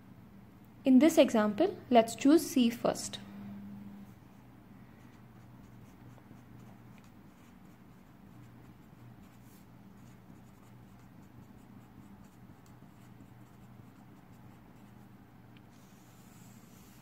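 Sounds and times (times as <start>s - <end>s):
low steady hum: 0.0s - 17.0s
marker pen scratching paper: 5.0s - 15.1s, 15.7s - 17.0s.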